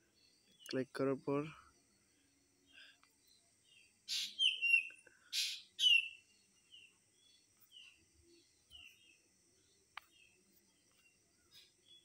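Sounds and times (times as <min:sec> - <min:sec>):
high insect trill: 0:00.0 - 0:12.0
small birds chirping: 0:00.0 - 0:12.0.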